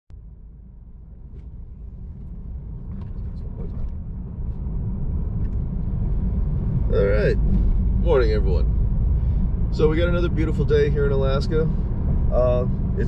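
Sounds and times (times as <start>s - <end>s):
car idling rumble: 0.1s - 13.0s.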